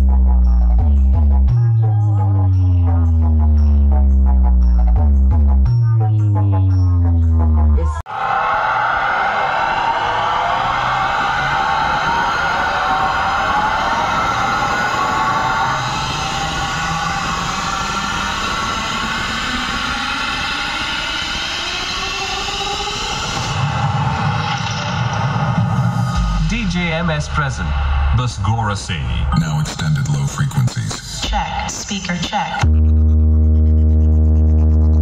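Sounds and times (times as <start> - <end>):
electronic music with gliding synth tones: 0.0 - 7.8, 32.6 - 35.0
bass: 0.0 - 8.1, 9.8 - 35.0
low rising synth tone: 9.0 - 28.4, 32.6 - 35.0.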